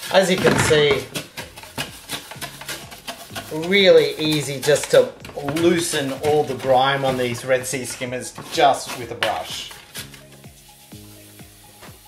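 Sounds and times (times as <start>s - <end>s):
stiff brush scrubbing plastic: 0.0s - 11.0s.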